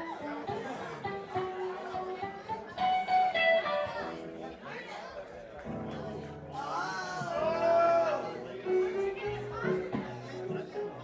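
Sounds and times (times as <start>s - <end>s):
band instruments stray notes: 0.0s - 4.5s
audience chatter: 0.0s - 11.0s.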